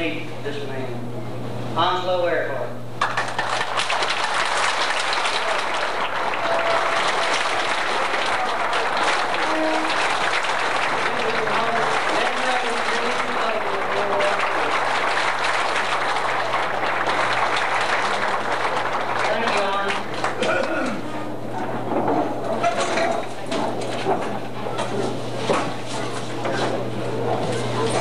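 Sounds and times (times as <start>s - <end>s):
audience applauding: 3.0s - 21.2s
faint voices: 5.2s - 10.2s.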